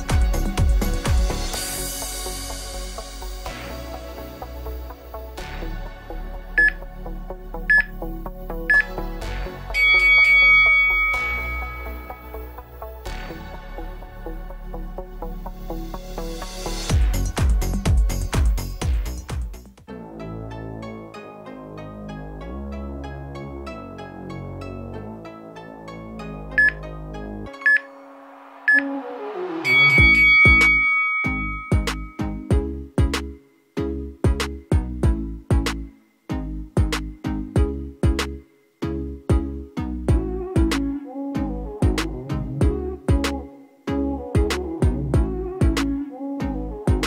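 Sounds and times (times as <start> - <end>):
electronic background music: 0.0 - 47.0
timer beeps: 6.6 - 6.8, 7.7 - 7.9, 8.7 - 9.0, 9.8 - 12.4, 26.6 - 26.8, 27.6 - 27.9, 28.7 - 28.9, 29.7 - 32.4.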